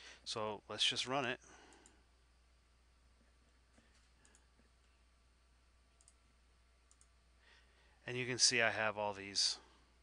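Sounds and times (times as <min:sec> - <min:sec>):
computer mouse clicks: 0:01.0 - 0:02.0, 0:03.7 - 0:05.0, 0:06.0 - 0:06.2, 0:06.9 - 0:07.2.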